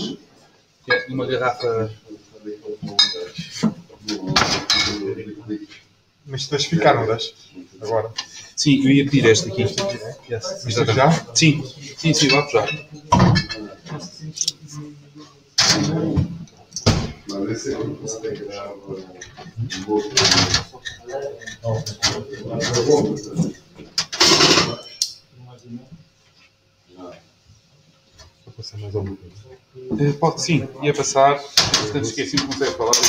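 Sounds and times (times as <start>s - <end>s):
glass bottles clinking: 2.9s - 3.3s, 12.2s - 13.8s, 24.2s - 25.1s
murmured speech: 6.3s - 23.8s.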